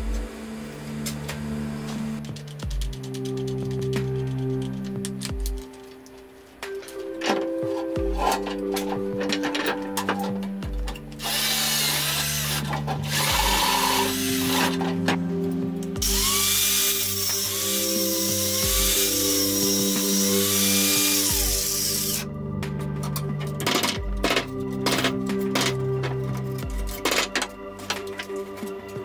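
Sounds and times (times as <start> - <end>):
background music: 0.0 - 29.0
power tool working metal: 6.9 - 22.3.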